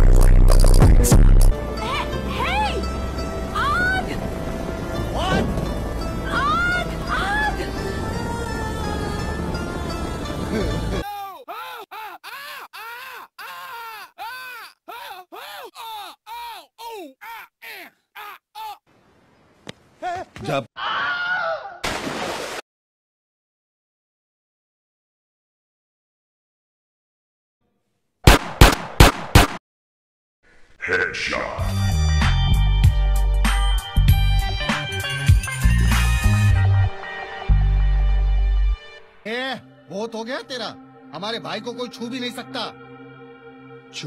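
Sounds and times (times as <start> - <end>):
person crying out in pain: 10.5 - 18.8
gunshots: 28.2 - 29.6.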